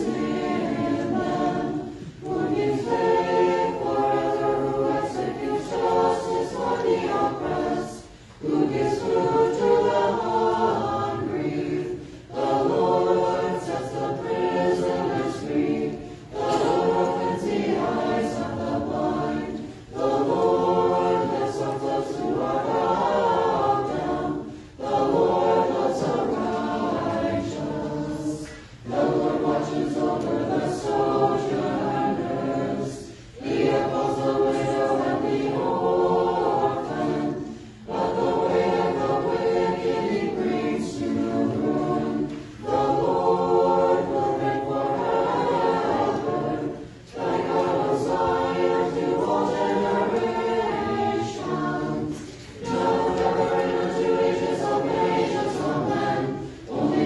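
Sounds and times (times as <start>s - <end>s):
choir chanting a cappella: 0.0s - 57.0s.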